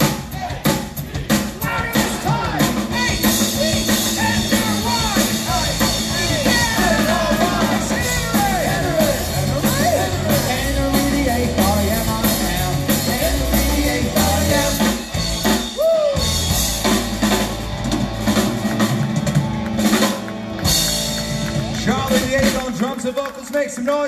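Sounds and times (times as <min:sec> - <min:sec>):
rock band playing: 0:00.0 - 0:23.3
person singing: 0:01.2 - 0:15.2.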